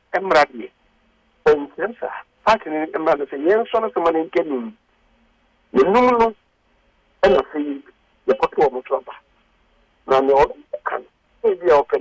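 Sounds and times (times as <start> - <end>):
man talking over telephone line: 0.1 - 0.7, 1.4 - 4.8, 5.7 - 6.4, 7.2 - 9.2, 10.0 - 12.0.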